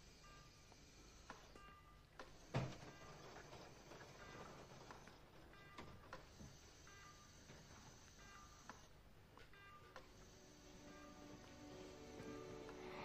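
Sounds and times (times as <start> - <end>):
patient monitor beeps: 0.0 - 13.0.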